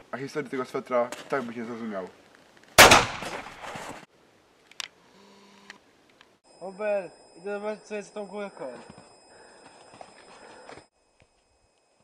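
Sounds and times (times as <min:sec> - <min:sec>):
pistol gunshot: 0:02.8 - 0:03.8.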